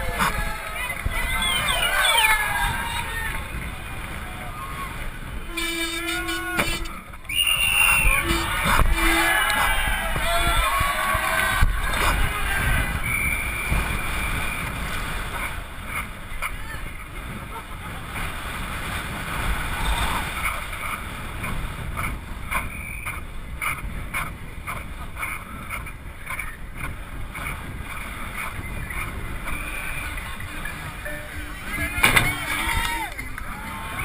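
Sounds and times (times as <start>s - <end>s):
bike tyre rumble: 0.0s - 34.0s
wind rushing over microphone: 0.0s - 34.0s
high steady squeal: 5.5s - 9.8s.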